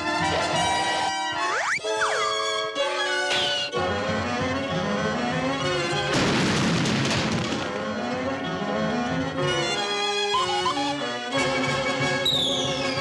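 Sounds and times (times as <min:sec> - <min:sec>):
loud noisy crash: 0:06.1 - 0:07.8
brass-led orchestral music: 0:07.6 - 0:13.0.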